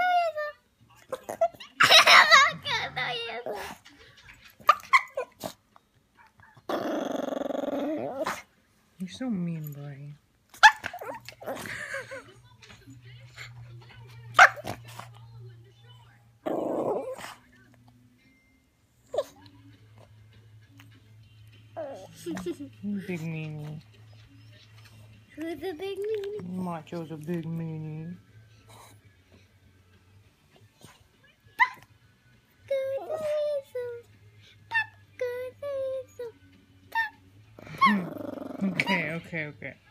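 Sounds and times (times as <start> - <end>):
dog barking and growling: 1.0 - 5.6, 6.2 - 8.6, 10.5 - 12.2, 14.3 - 15.1, 16.4 - 17.5, 21.8 - 23.8, 30.8 - 32.0, 36.9 - 39.4
dog yipping: 4.6 - 5.4, 10.6 - 11.6, 14.4 - 14.8, 31.6 - 31.9, 34.7 - 35.0, 36.9 - 38.1.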